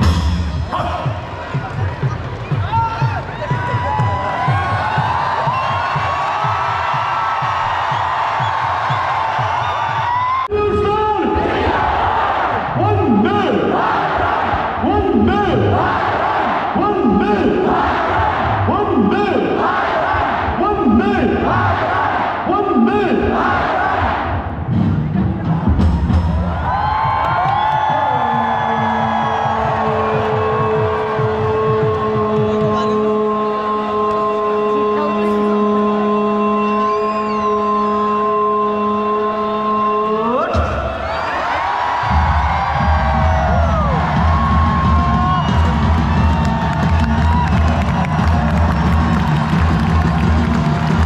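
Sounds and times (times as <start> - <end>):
loudspeaker music: 0.0 - 6.9, 10.2 - 26.6, 27.9 - 36.8
stadium crowd: 0.0 - 51.0
crowd chanting rhythmically: 11.2 - 25.9, 27.9 - 51.0.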